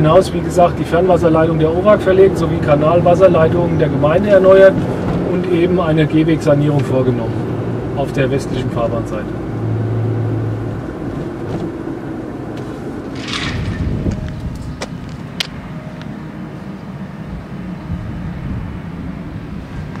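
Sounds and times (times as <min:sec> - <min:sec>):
car engine and road noise: 0:00.0 - 0:20.0
excavator diesel engine hum: 0:00.0 - 0:20.0.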